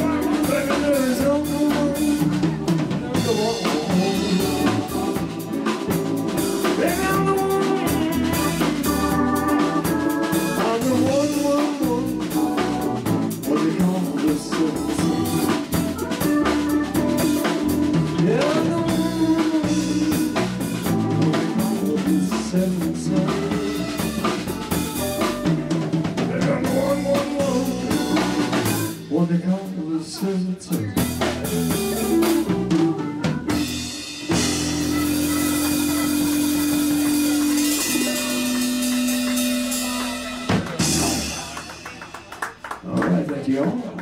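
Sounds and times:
electronic organ keyboard: 0:00.0 - 0:29.0, 0:31.3 - 0:41.6
electric guitar: 0:00.0 - 0:29.1, 0:30.2 - 0:43.1
drum kit steady beat: 0:00.0 - 0:43.0
electric bass: 0:00.0 - 0:43.0.

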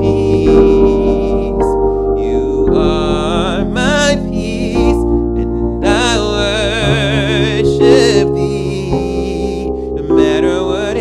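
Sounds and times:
electronic keyboard chords: 0:00.0 - 0:11.0
man singing with vibrato: 0:00.0 - 0:11.0.

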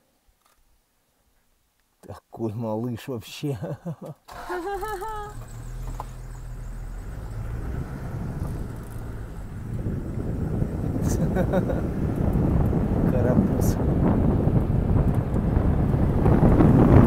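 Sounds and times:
rough road noise: 0:04.3 - 0:17.0
vehicle engine humming: 0:04.3 - 0:17.0
wind noise: 0:04.3 - 0:17.0.

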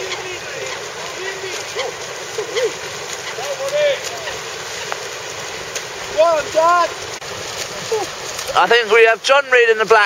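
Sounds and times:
faint calls: 0:00.0 - 0:05.6
splashing water: 0:00.0 - 0:10.0.

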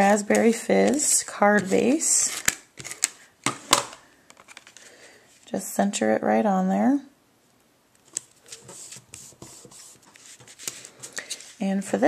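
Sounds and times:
paper rustling: 0:00.0 - 0:03.2, 0:08.0 - 0:11.6.

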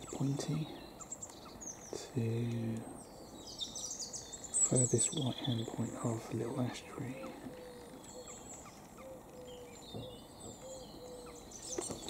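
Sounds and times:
low arched bird call: 0:00.0 - 0:12.0
high songbird chirps and whistles: 0:03.0 - 0:05.8, 0:07.0 - 0:12.0.

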